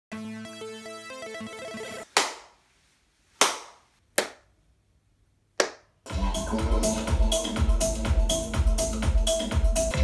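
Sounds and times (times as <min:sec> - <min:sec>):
hand claps echoing in a room: 0:02.1 - 0:02.6, 0:03.4 - 0:04.5, 0:05.6 - 0:05.9.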